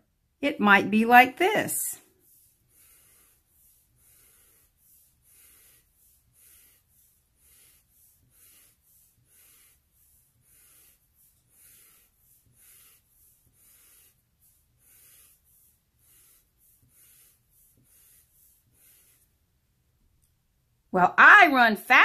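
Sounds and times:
marker scratching on paper: 0.7 - 19.3.

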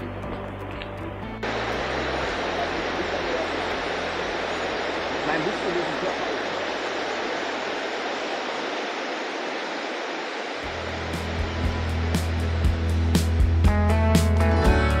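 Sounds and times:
background music with bass line: 0.0 - 2.6, 10.7 - 15.0
river rushing over rocks: 1.4 - 13.2.

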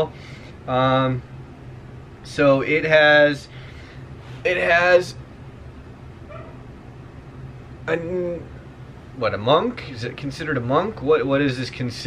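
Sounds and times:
steady low hum: 0.0 - 12.0
faint dog whimper: 6.3 - 6.6.

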